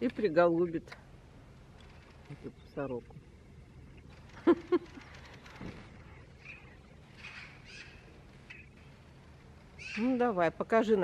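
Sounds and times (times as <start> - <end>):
faint short bird calls: 6.0 - 8.8.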